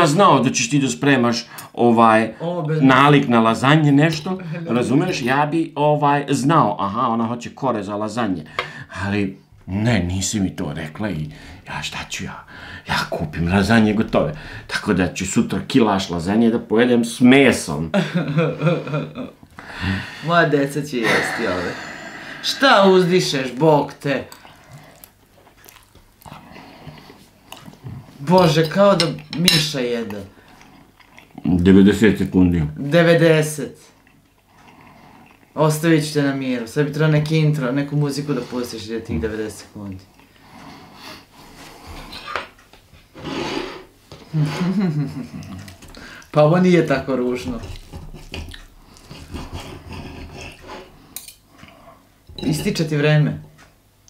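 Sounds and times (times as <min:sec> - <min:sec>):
man chewing noisily: 0:24.3 - 0:28.2, 0:30.1 - 0:31.6, 0:33.9 - 0:35.6, 0:39.9 - 0:42.8, 0:45.3 - 0:46.4, 0:47.6 - 0:52.0.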